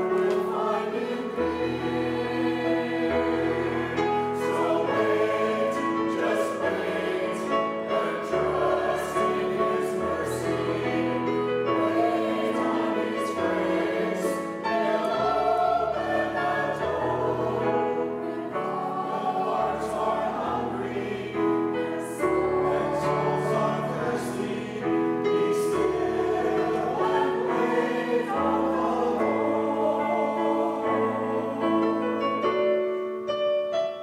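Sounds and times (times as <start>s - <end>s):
choir singing held chords: 0.0s - 33.3s.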